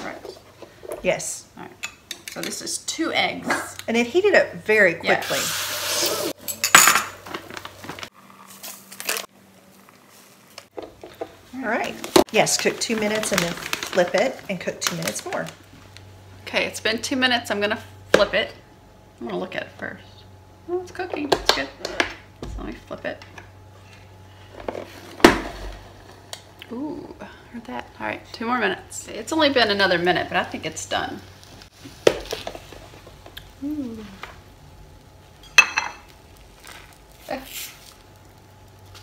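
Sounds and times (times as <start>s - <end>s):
plastic bag rustling: 7.2s - 10.6s, 11.6s - 15.8s, 36.3s - 39.0s.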